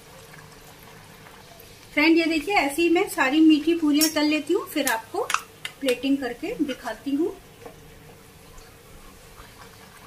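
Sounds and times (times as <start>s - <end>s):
oil sizzling and bubbling: 0.0s - 10.0s.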